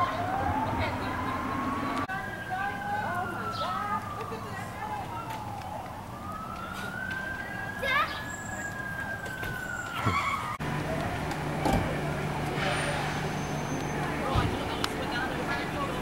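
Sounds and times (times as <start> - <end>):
emergency siren wailing: 0.0 - 16.0
low engine hum: 10.5 - 16.0.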